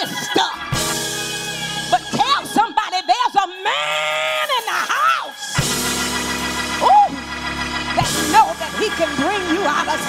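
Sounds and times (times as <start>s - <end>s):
church organ chord: 5.4s - 10.0s.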